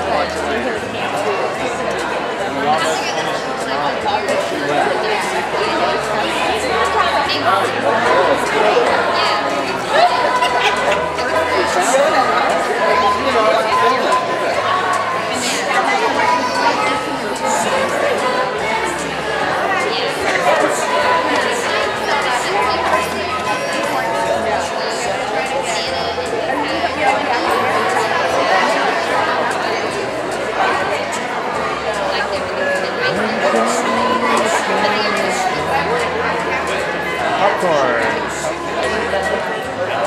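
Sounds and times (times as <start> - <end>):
babble of many voices: 0.0 - 40.0
crowd chatter: 0.0 - 40.0.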